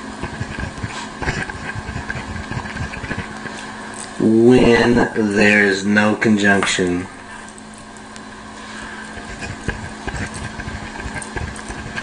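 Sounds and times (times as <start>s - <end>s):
steady low hum: 0.0s - 12.0s
pen scratching and tapping on paper: 0.2s - 3.6s, 9.2s - 12.0s.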